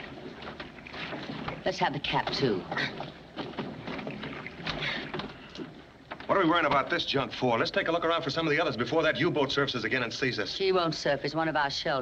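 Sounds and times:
water sloshing against boat: 0.0s - 7.2s.

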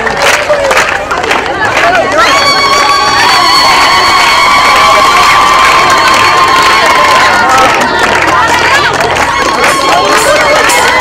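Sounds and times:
crowd clapping and cheering: 0.0s - 11.0s.

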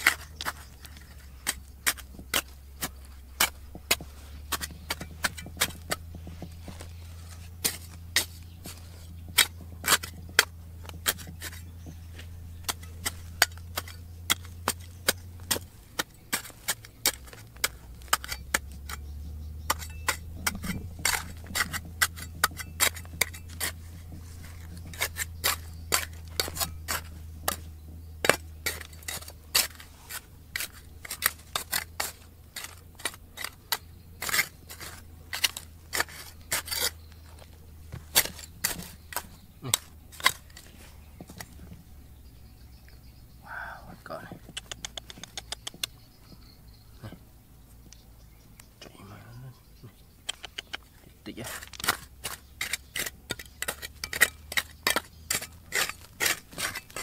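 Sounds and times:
metal trowel scraping stony soil: 0.0s - 42.4s, 50.3s - 57.0s.

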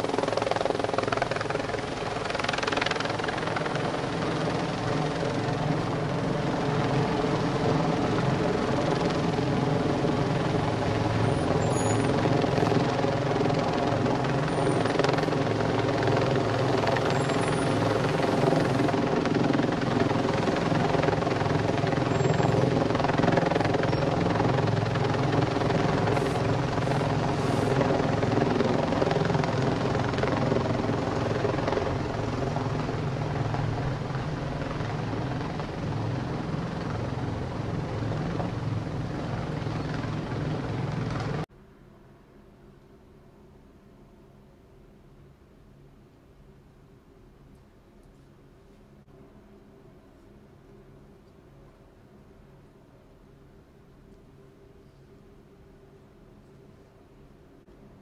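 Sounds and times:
loud steady mechanical drone: 0.0s - 41.4s.

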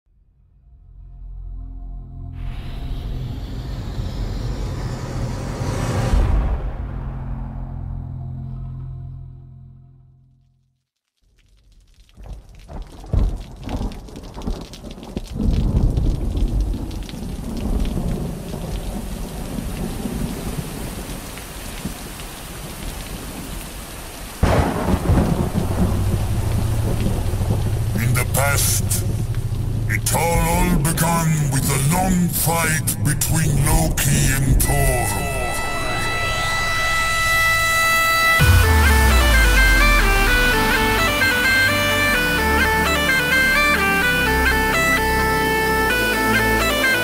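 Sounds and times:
rising synth sweep: 0.7s - 9.7s, 35.2s - 47.0s
steady rain: 11.2s - 47.0s
rolling low thunder: 12.2s - 21.2s, 24.4s - 29.9s
loud crash of thunder: 24.4s - 28.0s
low bass: 24.4s - 47.0s
held synth tones: 34.5s - 47.0s.

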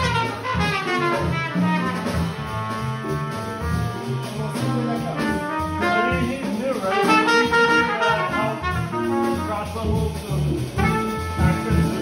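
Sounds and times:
trumpet melody: 0.0s - 10.0s, 10.6s - 12.0s
drums: 0.0s - 12.0s
walking bass line: 0.0s - 12.0s.

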